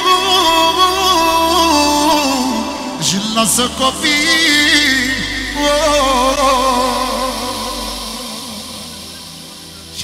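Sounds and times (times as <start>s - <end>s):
steady bass drone: 0.0s - 10.0s.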